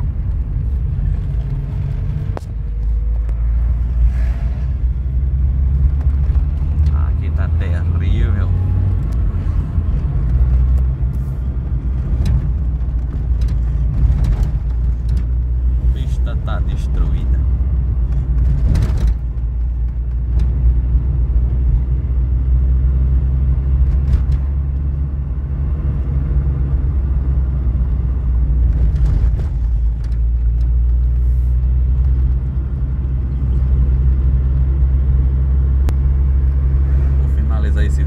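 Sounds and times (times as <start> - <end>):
car cabin engine and tyre rumble: 0.0 - 38.0.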